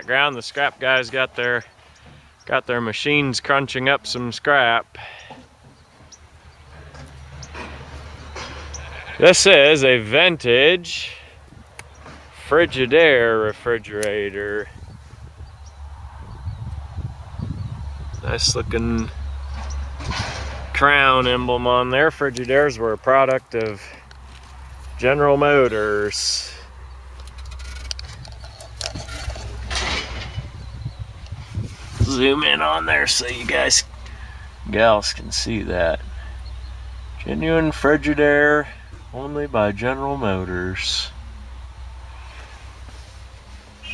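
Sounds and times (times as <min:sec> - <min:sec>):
distant machinery hum: 0:00.0 - 0:43.9.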